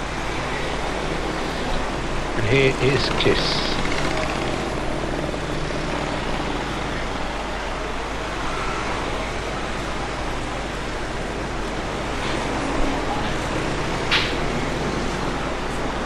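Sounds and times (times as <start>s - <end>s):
road traffic drone: 0.0s - 16.0s.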